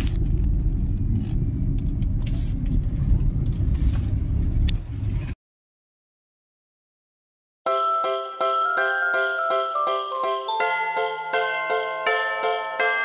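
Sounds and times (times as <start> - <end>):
car engine rumble inside cabin: 0.0 - 5.4
road noise: 0.0 - 5.4.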